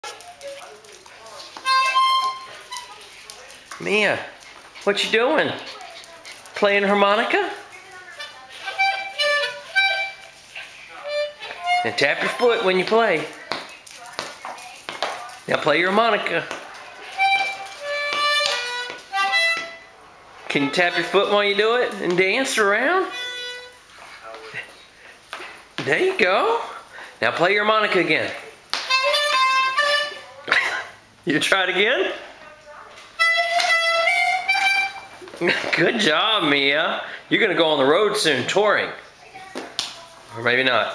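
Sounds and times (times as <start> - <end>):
harmonica puffs: 1.6 - 3.1, 8.1 - 12.7, 16.9 - 20.0, 23.0 - 25.7, 28.8 - 30.3, 33.2 - 35.6.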